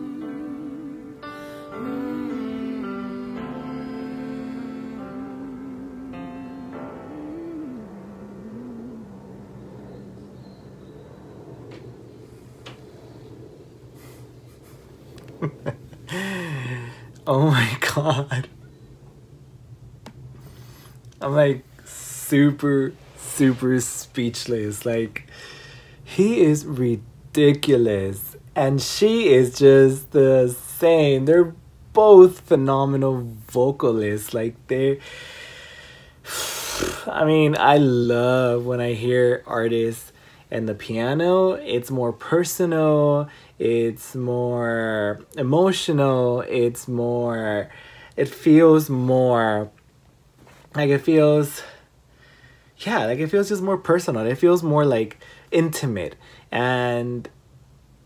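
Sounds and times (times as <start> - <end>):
person singing a sustained note: 0.0 - 14.6
piano low chord ringing: 0.0 - 17.1
man breathing in: 16.1 - 17.2, 25.3 - 26.1, 35.0 - 37.0, 47.7 - 48.2, 51.8 - 52.8, 55.2 - 55.5, 56.2 - 56.5.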